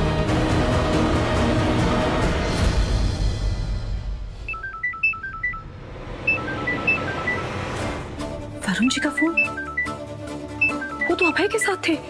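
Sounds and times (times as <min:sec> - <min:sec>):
high beep-like melody: 0:04.5 - 0:07.6, 0:08.6 - 0:11.8.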